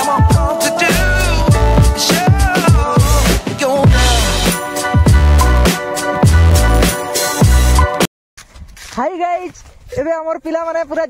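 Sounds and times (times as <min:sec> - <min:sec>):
background music: 0:00.0 - 0:08.1.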